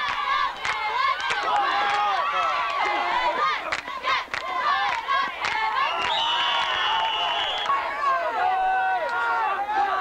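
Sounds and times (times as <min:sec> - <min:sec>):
crowd talking and shouting: 0:00.0 - 0:10.0
referee's whistle: 0:05.8 - 0:07.8.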